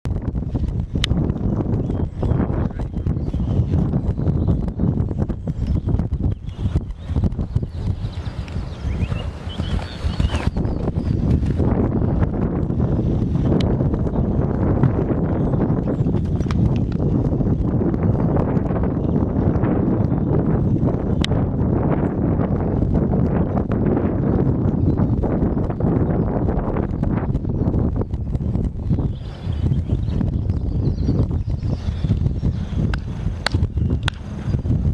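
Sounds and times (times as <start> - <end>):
heavy low rumble: 0.0 - 34.9
horse hoofbeats cantering: 0.4 - 34.9.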